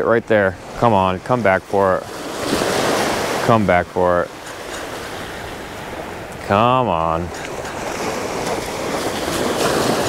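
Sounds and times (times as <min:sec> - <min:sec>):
small waves lapping: 0:00.0 - 0:10.0
wind: 0:00.0 - 0:10.0.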